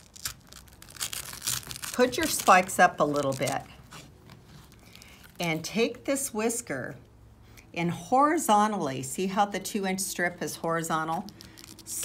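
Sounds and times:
hook-and-loop fastening ripping: 0.0 - 5.4, 11.0 - 12.0.

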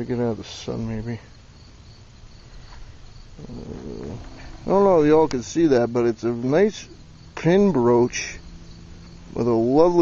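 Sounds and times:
crickets chirping: 0.0 - 10.0
low rumbling noise: 2.9 - 10.0.

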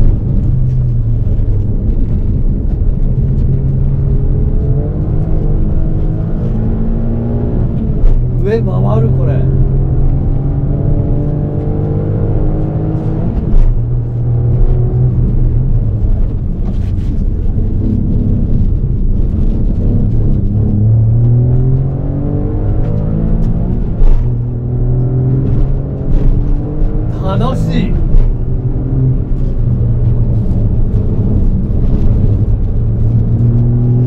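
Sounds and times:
car engine revving: 0.0 - 34.0.

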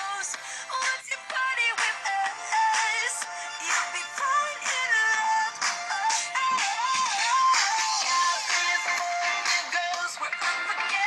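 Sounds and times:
pop song from portable speaker: 0.0 - 11.0.

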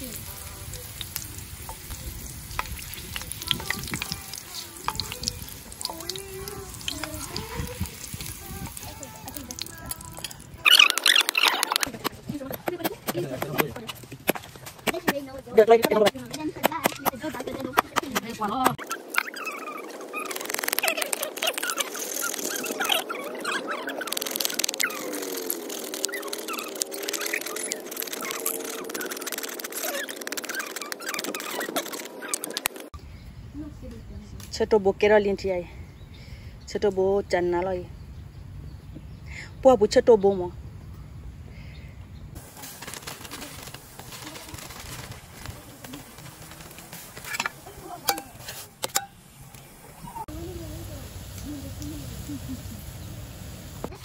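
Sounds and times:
birds chirping: 0.0 - 54.0
knife scraping wooden stick: 18.9 - 32.8, 47.0 - 49.2.

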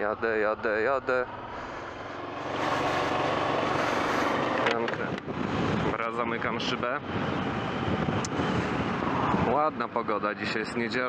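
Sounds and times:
motorcycle engine running: 0.1 - 5.9
wind rushing on microphone: 2.5 - 10.8.

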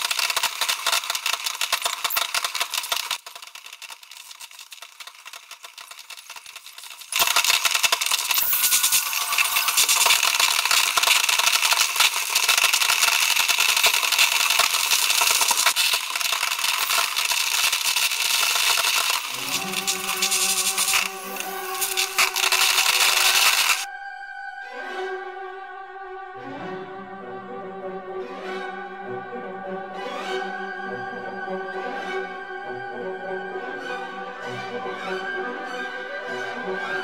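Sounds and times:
fireworks crackling: 0.0 - 23.9
orchestral string music: 19.3 - 23.0, 23.9 - 37.0.

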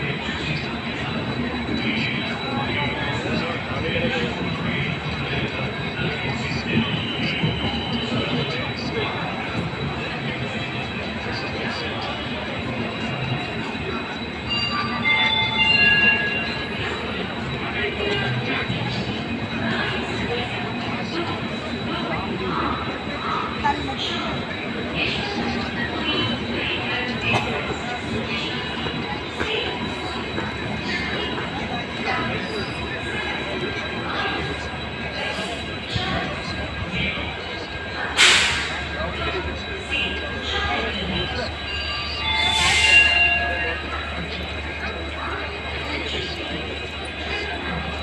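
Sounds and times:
train coaches rolling past: 0.0 - 48.0
high-pitched metallic squeal: 0.2 - 48.0.

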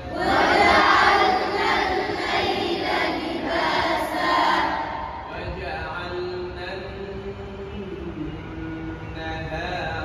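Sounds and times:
boys chanting in unison: 0.0 - 5.6.

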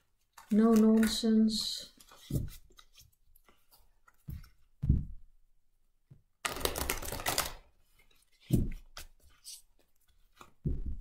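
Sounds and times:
cards being riffle-shuffled: 0.0 - 4.7, 6.4 - 11.0.

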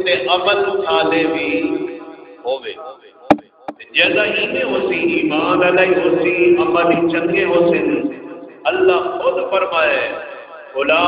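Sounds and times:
man talking: 0.0 - 1.7, 2.5 - 2.8, 3.8 - 8.1, 8.7 - 10.2, 10.8 - 11.0
sharp knocks: 3.3 - 3.8.

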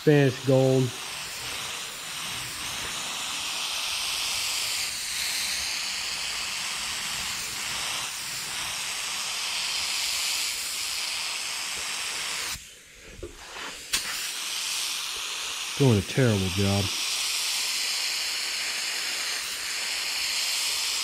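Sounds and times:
spray gun hissing: 0.0 - 21.0.

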